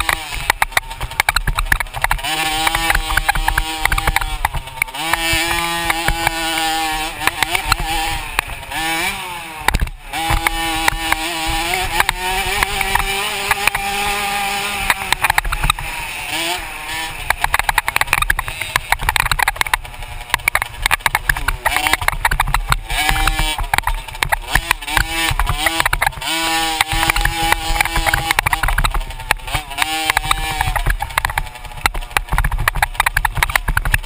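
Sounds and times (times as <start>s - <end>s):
dirt bike engine revving: 0.0s - 34.0s.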